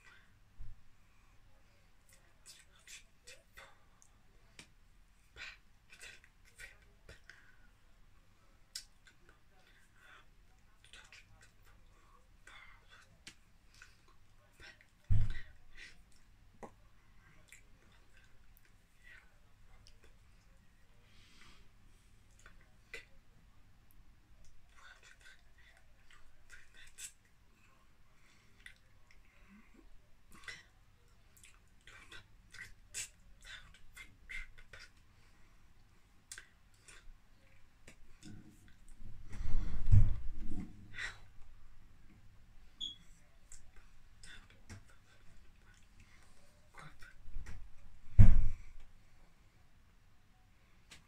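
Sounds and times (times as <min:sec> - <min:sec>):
soft smacking noises: 0:12.6 - 0:20.6, 0:43.1 - 0:49.0, 0:50.8 - 0:51.0
dull thump of hands: 0:48.2 - 0:48.6.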